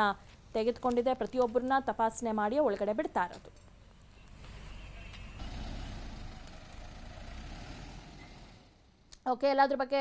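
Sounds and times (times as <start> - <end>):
road noise: 0.0 - 9.3
truck engine rumbling: 3.6 - 9.1.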